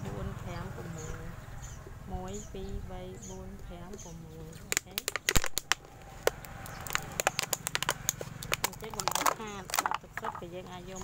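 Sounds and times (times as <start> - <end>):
scissors cutting plastic bottle: 4.6 - 10.5.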